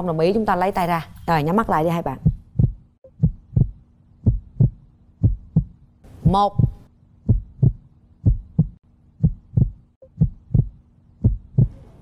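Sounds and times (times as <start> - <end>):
heartbeat thumps: 2.1 - 11.8.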